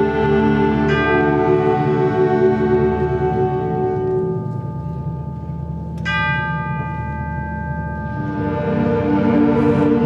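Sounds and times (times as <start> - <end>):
concert band sustained chord: 0.0 - 10.0
tubular bell ringing: 0.0 - 10.0.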